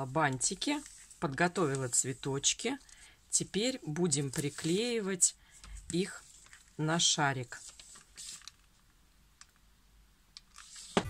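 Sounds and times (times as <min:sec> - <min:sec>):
soft rustle on tabletop: 0:00.0 - 0:03.0, 0:04.0 - 0:06.8, 0:07.4 - 0:08.5.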